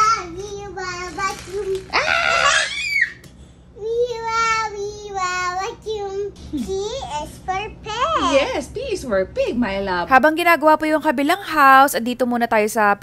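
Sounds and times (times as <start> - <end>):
toddler squealing: 1.3 - 3.2.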